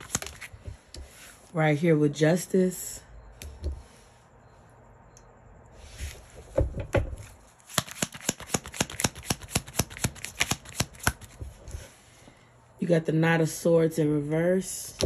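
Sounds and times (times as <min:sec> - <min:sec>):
cards clicking while shuffled: 0:00.0 - 0:00.6, 0:07.7 - 0:11.4.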